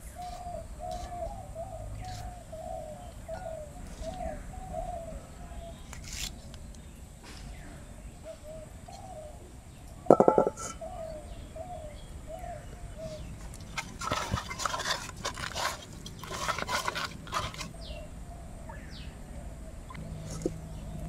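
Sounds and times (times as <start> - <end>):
birds calling: 0.0 - 21.0
hands mixing wet fish: 13.3 - 17.8.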